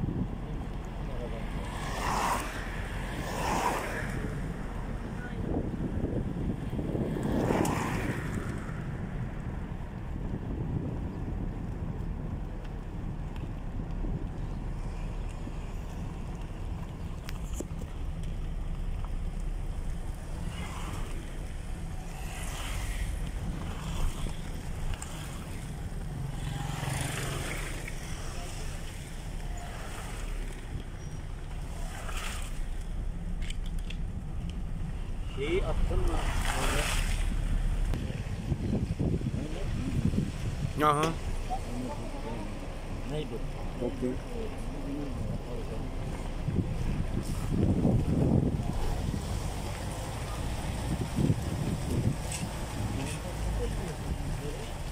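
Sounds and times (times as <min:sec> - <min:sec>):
car driving rumble: 0:00.0 - 0:54.9
wind buffeting microphone: 0:00.0 - 0:54.9.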